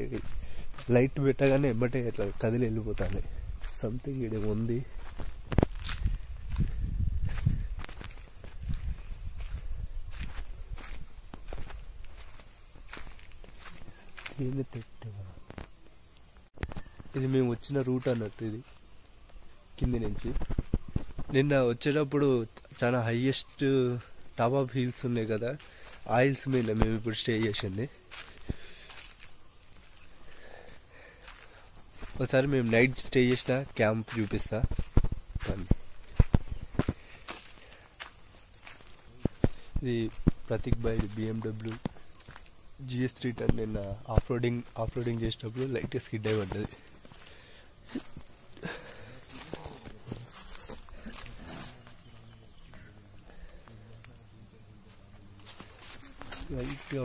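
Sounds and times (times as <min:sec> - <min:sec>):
footsteps on forest floor: 0:00.0 - 0:57.0.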